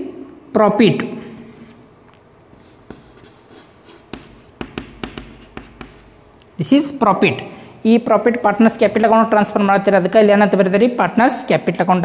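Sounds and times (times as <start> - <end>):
chalk writing on chalkboard: 1.5 - 1.8, 2.5 - 6.2.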